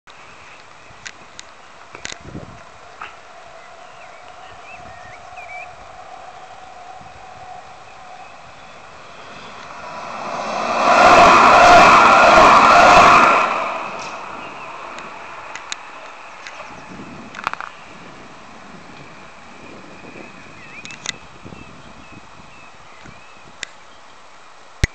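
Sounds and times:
tram passing: 0:01.3 - 0:21.0.

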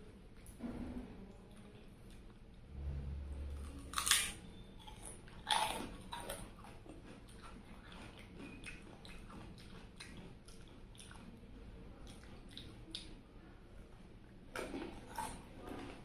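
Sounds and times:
soft chewing with wet clicks: 0:01.3 - 0:02.7, 0:03.6 - 0:16.0
crunching crisp snack: 0:03.6 - 0:11.3, 0:14.5 - 0:16.0.

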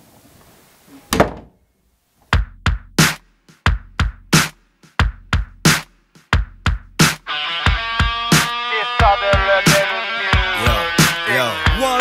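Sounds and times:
wooden door shutting with a thud: 0:01.1 - 0:01.6.

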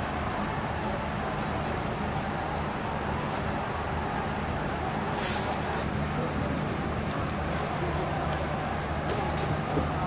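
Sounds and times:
diesel bus engine idling: 0:00.0 - 0:10.0
compressed air hiss: 0:05.1 - 0:05.6.

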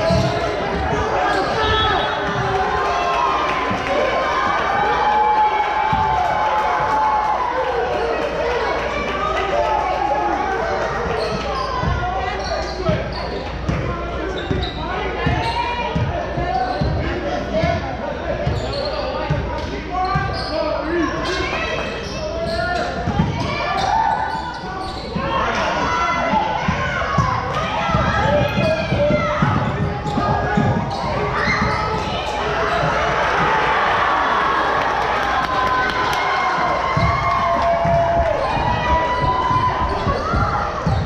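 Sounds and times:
voices calling out in gymnasium: 0:00.0 - 0:41.0
basketball bouncing on wooden floor: 0:36.9 - 0:41.0.

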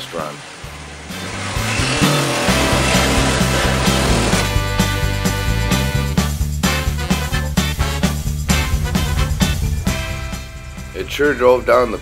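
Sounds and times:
reciprocating saw cutting metal: 0:00.4 - 0:04.7
background music with steady beat: 0:01.2 - 0:12.0.

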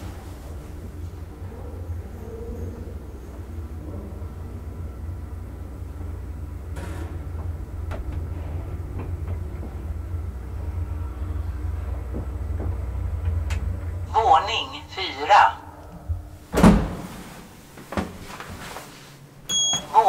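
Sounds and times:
elevator car rumbling: 0:00.0 - 0:20.0.

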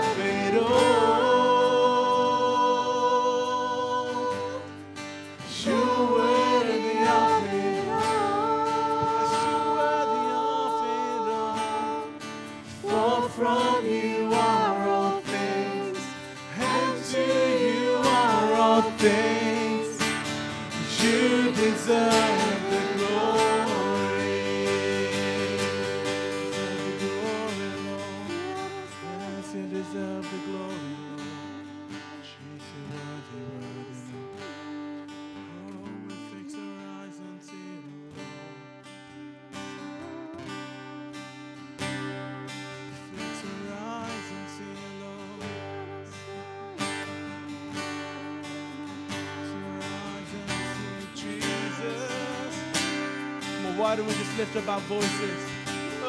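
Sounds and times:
worship band with singing: 0:00.0 - 0:31.6, 0:46.8 - 0:56.0
strummed acoustic guitar: 0:00.0 - 0:56.0.

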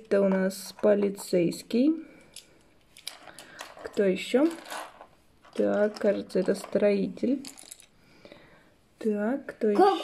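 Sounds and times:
woman speaking: 0:00.0 - 0:02.0, 0:03.8 - 0:04.7, 0:05.5 - 0:07.6, 0:09.0 - 0:10.0.

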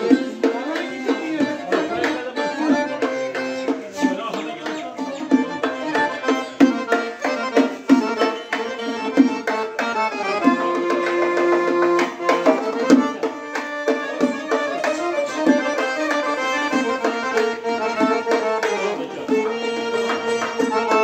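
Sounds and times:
accordion melody: 0:00.0 - 0:21.0
frame drums beating: 0:00.0 - 0:21.0
small string instrument: 0:00.0 - 0:21.0.

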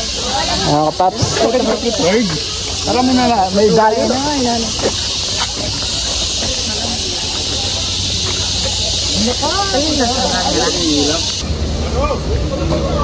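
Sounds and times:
people talking: 0:00.0 - 0:13.0
steady high hiss: 0:00.0 - 0:13.0.

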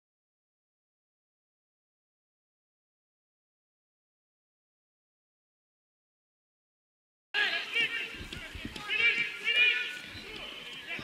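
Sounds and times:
men shouting: 0:07.4 - 0:11.0
open-air stadium noise: 0:07.4 - 0:11.0.

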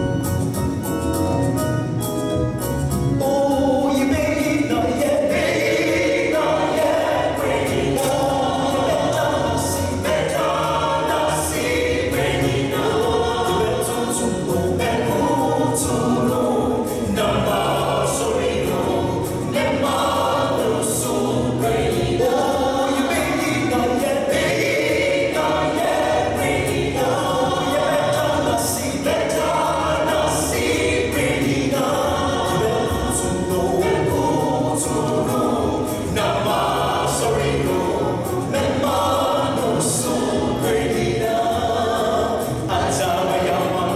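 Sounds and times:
group singing gospel in harmony: 0:02.9 - 0:43.9.

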